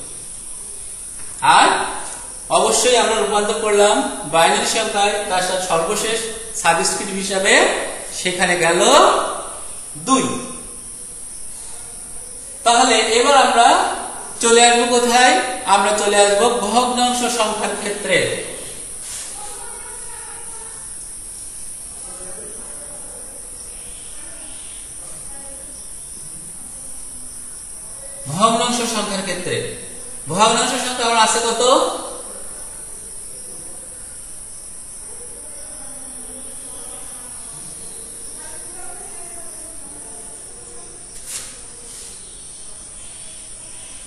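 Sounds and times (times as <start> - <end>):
steady high-pitched hiss: 0.0 - 44.0.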